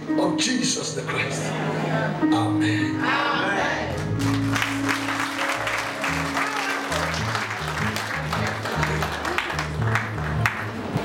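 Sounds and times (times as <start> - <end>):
bass guitar line: 3.9 - 11.0
crowd clapping and applauding: 4.0 - 11.0.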